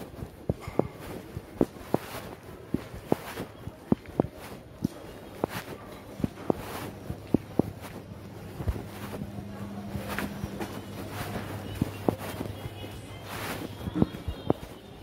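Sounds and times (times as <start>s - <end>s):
footsteps on dusty lane: 0.0s - 15.0s
steady low hum: 0.0s - 15.0s.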